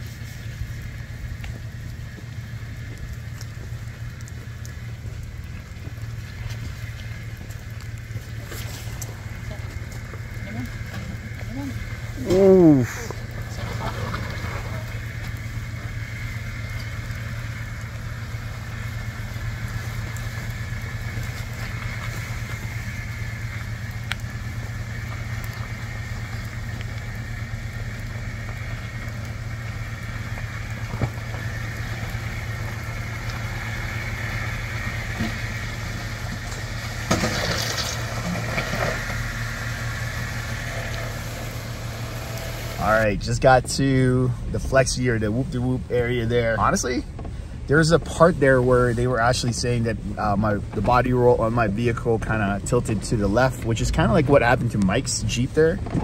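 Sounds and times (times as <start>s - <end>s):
car engine running at low speed: 0.0s - 56.0s.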